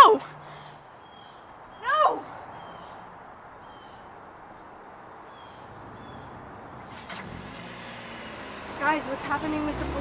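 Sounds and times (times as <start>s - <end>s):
car engine running: 6.9s - 10.0s.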